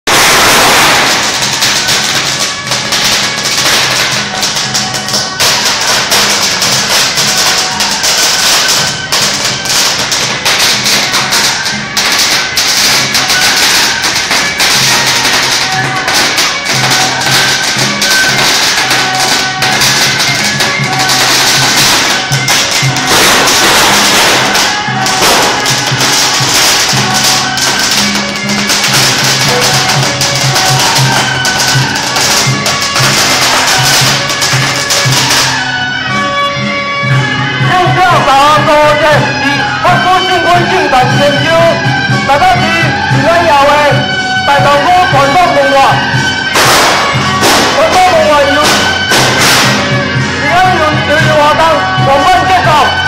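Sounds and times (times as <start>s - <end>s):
firecrackers crackling: 0.0s - 53.0s
music with held notes: 0.1s - 53.0s.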